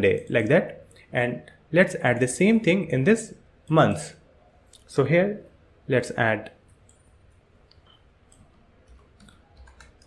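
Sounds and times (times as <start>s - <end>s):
keyboard and mouse clicks: 6.7s - 10.0s.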